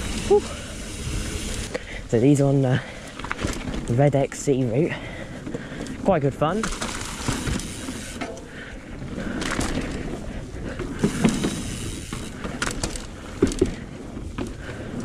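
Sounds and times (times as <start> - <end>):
bike tyres clattering on planks: 3.1 - 4.2, 4.9 - 8.6, 9.2 - 15.0
brake cables rattling: 5.0 - 8.6, 9.2 - 15.0.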